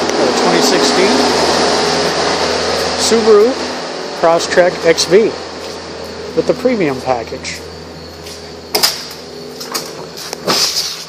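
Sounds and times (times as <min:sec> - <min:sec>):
low hum: 0:00.0 - 0:10.8
whooshing machine noise: 0:00.0 - 0:11.0.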